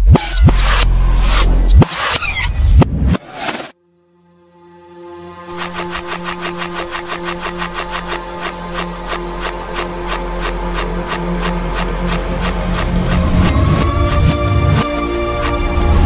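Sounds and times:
reversed pop instrumental: 5.5 - 16.0.

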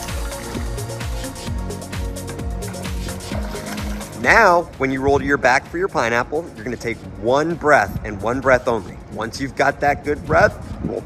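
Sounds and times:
electronic music with drum beat: 0.0 - 11.0.

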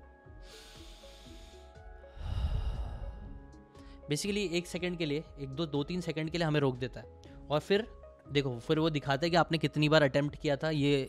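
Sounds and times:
soft background music: 0.0 - 11.0
man breathing heavily: 0.4 - 4.1.

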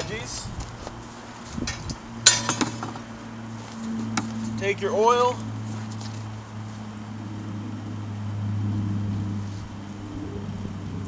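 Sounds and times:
steady low hum: 0.0 - 11.0
metal cookware clanking: 1.6 - 3.0.

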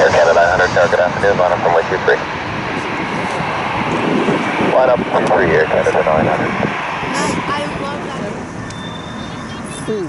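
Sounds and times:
jet engines rushing: 0.0 - 10.0.

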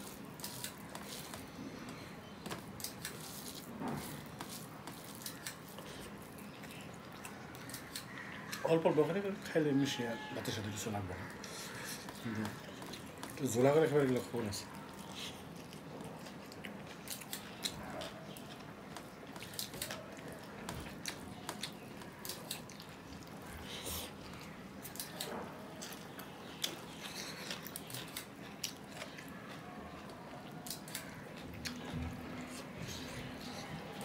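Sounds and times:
man chewing food: 0.0 - 34.0.

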